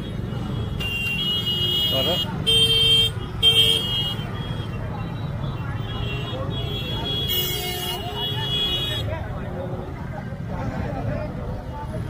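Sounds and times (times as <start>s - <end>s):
vehicle horns: 0.0s - 9.1s.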